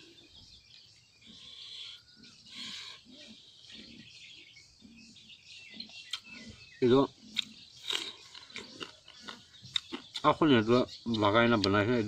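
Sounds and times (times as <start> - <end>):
birds chirping: 0.0 - 12.0
eating noises: 5.7 - 12.0.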